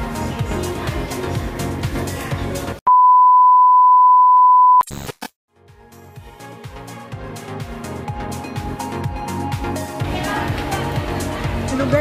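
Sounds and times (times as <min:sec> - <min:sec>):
background music: 0:00.0 - 0:02.8, 0:05.6 - 0:12.0
loud electronic beep: 0:02.9 - 0:05.1.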